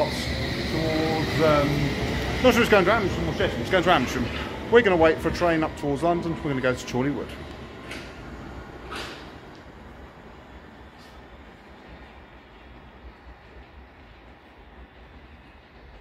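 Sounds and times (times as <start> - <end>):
underground train pulling away: 0.0 - 16.0.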